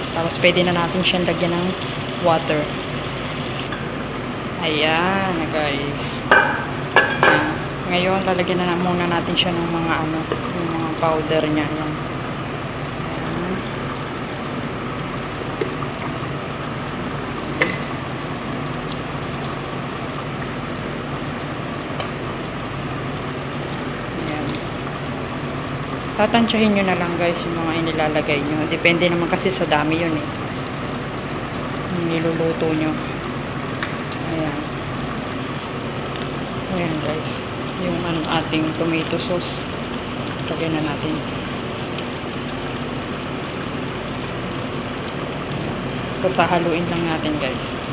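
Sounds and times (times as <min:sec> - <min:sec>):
chicken sizzling in oil: 0:00.0 - 0:47.9
cooking hiss in pot: 0:00.0 - 0:47.9.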